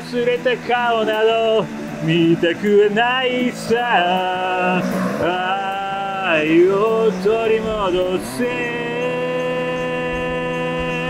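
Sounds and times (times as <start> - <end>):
bass guitar low note: 0.0 - 11.0
man singing a long note: 0.0 - 11.0.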